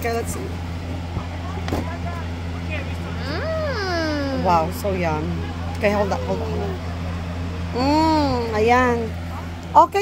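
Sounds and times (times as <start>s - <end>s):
low mechanical hum: 0.0s - 10.0s
faint voices: 1.0s - 9.6s.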